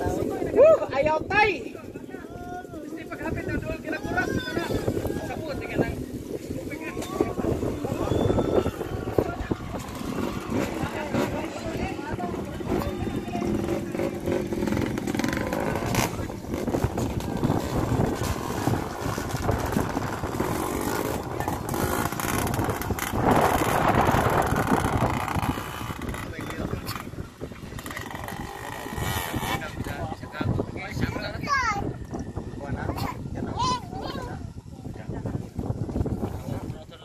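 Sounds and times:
people talking: 0.0s - 35.6s
distant dirt bike engines: 1.7s - 37.0s.

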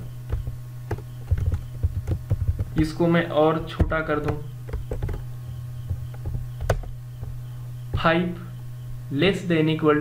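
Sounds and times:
steady low hum: 0.0s - 10.0s
keyboard keystrokes: 0.3s - 3.0s, 3.8s - 7.4s.

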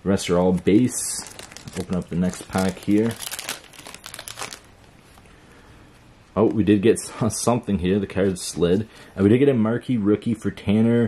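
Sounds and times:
card pack wrapper crinkling: 0.6s - 4.8s.

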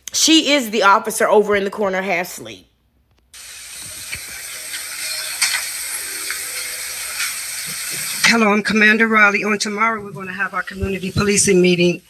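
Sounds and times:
steady recording hiss: 2.8s - 12.0s.

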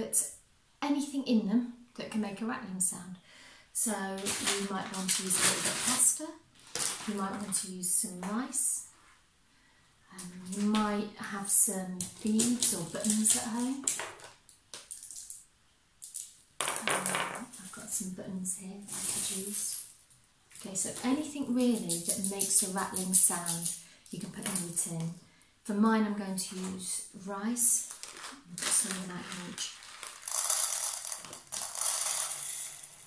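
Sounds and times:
rice pouring into metal tin: 29.6s - 33.0s.

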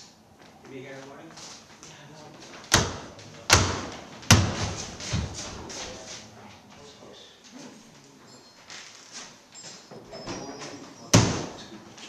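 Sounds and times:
loud heavy thuds: 2.7s - 5.7s.

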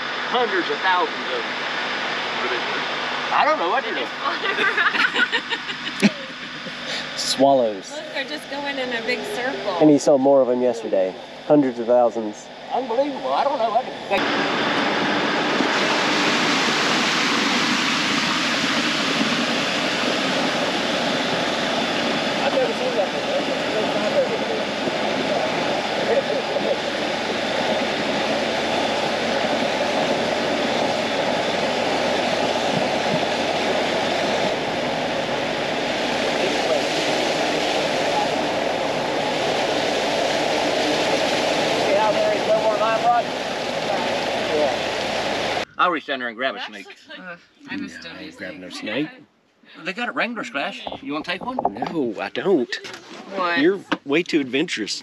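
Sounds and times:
swamp buggy engine running: 0.0s - 45.7s
road noise: 0.0s - 49.2s.

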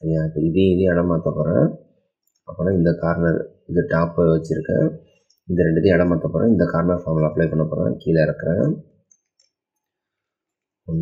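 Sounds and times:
man talking: 0.0s - 1.8s, 2.4s - 8.9s.

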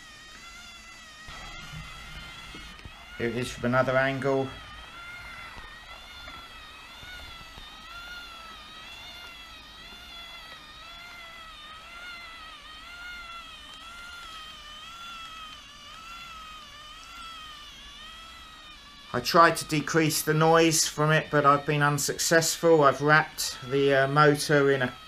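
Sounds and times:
motor whining with wavering pitch: 0.0s - 25.0s.

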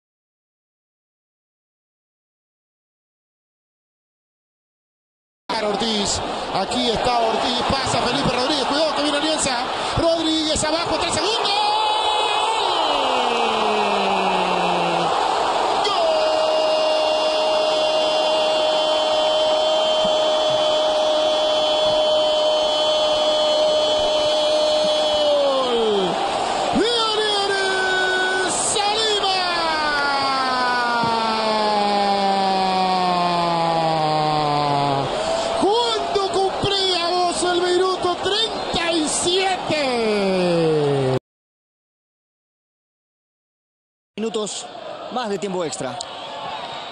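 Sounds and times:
commentator shouting goal cry: 5.5s - 41.2s
stadium crowd noise: 5.5s - 41.2s, 44.2s - 46.9s.

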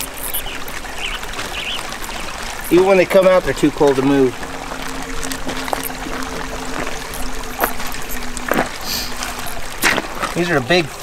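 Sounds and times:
faint steady hum: 0.0s - 10.8s
water trickling over stones: 0.0s - 11.0s.

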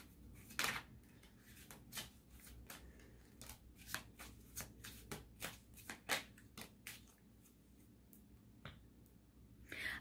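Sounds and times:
cards being shuffled: 0.0s - 7.6s.

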